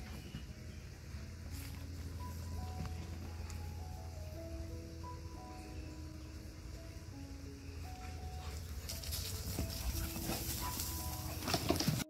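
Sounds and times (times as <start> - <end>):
soft background music: 0.0 - 12.0
dogs scuffling: 8.4 - 12.0.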